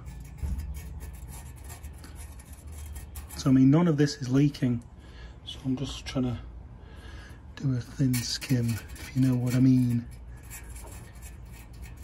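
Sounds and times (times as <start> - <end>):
metal tool scraping epoxy: 0.0 - 4.2, 7.9 - 12.0
low steady hum: 0.0 - 12.0.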